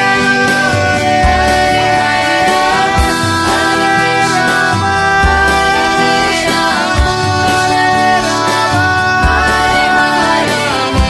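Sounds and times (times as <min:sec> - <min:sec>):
drum or cymbal strokes: 0:00.0 - 0:11.0
held instrument tones: 0:00.0 - 0:11.0
person singing through microphone: 0:00.0 - 0:11.0.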